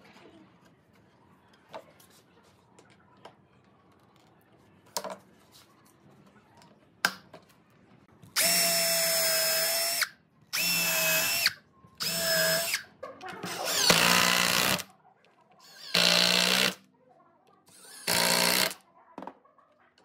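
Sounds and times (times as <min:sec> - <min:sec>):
cordless drill running: 0:08.4 - 0:12.8, 0:13.5 - 0:14.8, 0:15.7 - 0:16.8, 0:17.8 - 0:18.8.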